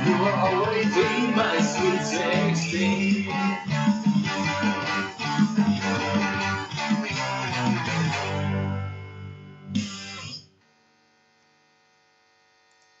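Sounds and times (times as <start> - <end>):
electric guitar chords: 0.0 - 10.4.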